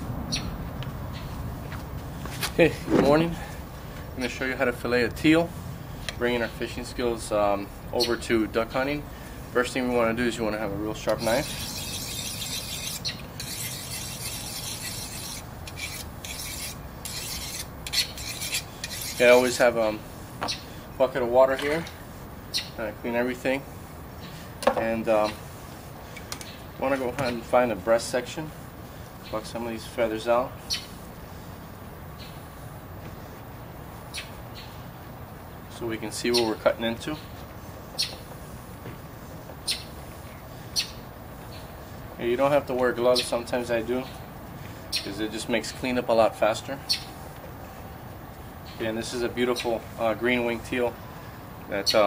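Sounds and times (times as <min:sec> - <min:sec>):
steady low background noise: 0:00.0 - 0:52.0
knife rasping on sharpening rod: 0:11.0 - 0:19.6.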